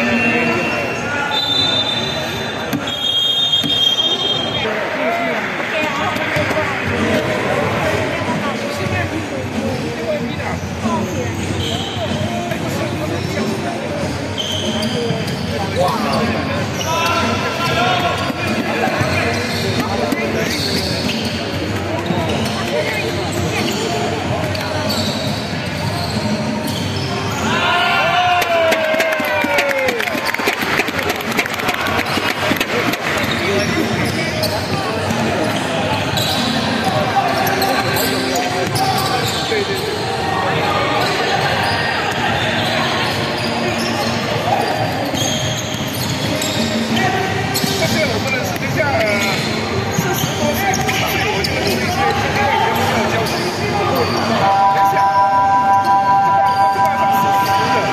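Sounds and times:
spectators' voices: 0:00.0 - 0:57.9
players calling: 0:09.8 - 0:57.9.

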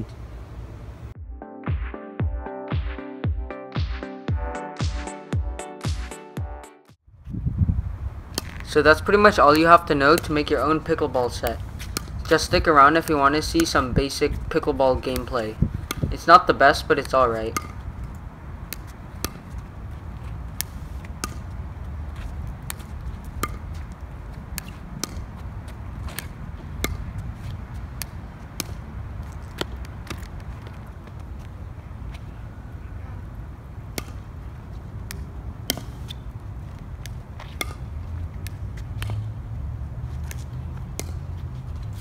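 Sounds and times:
wind rumble on microphone: 0:07.1 - 0:08.9, 0:11.6 - 0:16.3
ball bouncing on asphalt: 0:08.3 - 0:08.7, 0:09.4 - 0:32.3, 0:33.7 - 0:39.4, 0:40.1 - 0:42.0
paddles striking ball: 0:09.5 - 0:19.7, 0:20.5 - 0:21.6, 0:22.3 - 0:30.8, 0:33.9 - 0:34.3, 0:40.3 - 0:41.2.

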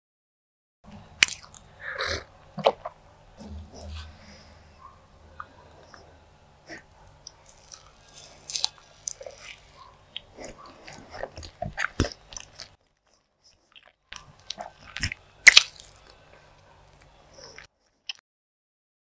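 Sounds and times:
close chewing with mouth smacks: 0:06.8 - 0:18.2.

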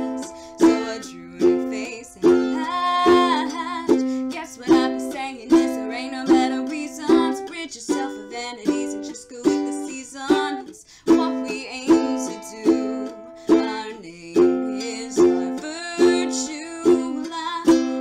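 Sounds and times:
ukulele strumming: 0:00.0 - 0:18.0.

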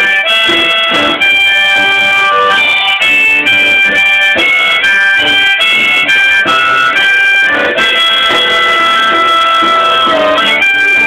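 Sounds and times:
harmonica chord: 0:00.0 - 0:11.0
strummed acoustic guitar: 0:00.0 - 0:11.0.

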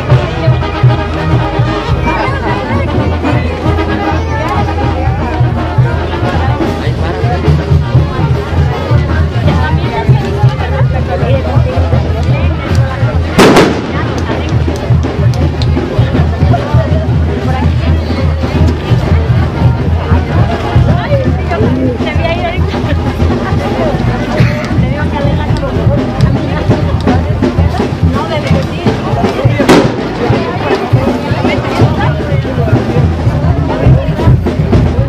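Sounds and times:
crowd chatter: 0:00.0 - 0:35.0
music: 0:00.0 - 0:35.0
loud bang: 0:13.4 - 0:14.4.

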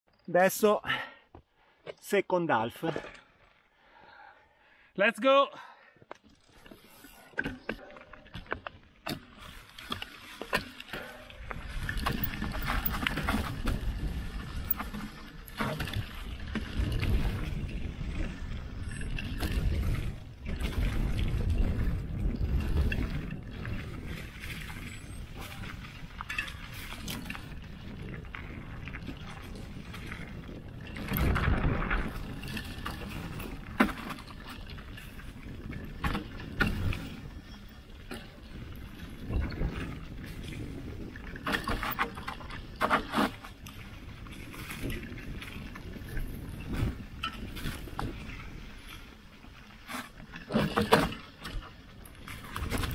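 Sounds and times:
bike clicks and rattles: 0:06.0 - 0:52.9
bike tyres rolling over dirt: 0:06.0 - 0:52.9.

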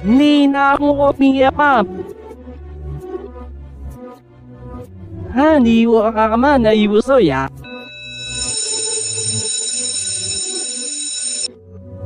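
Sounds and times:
electric school bell ringing: 0:07.6 - 0:11.5.

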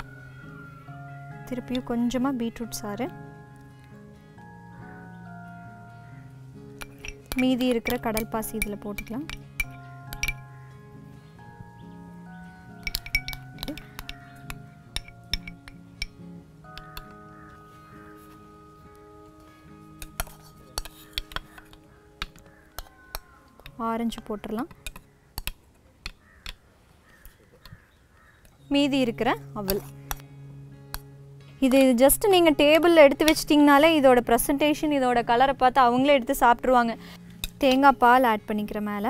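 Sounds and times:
soft background music: 0:00.0 - 0:39.0
spoon clinking against glass: 0:06.8 - 0:10.4, 0:12.8 - 0:16.2, 0:20.0 - 0:21.7.

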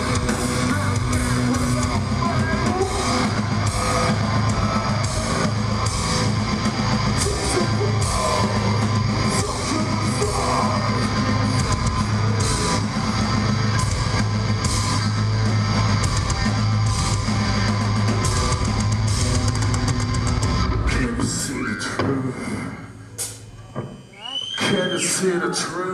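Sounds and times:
heavy metal band playing: 0:00.0 - 0:23.4.

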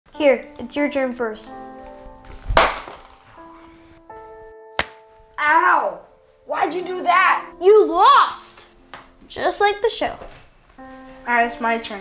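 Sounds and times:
background music long notes: 0:00.1 - 0:12.0
paper tile slammed down: 0:02.4 - 0:03.2, 0:04.8 - 0:05.0.

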